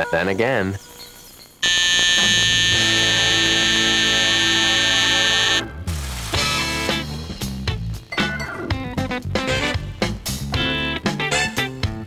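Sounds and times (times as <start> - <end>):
alarm clock buzzer: 1.6 - 5.8.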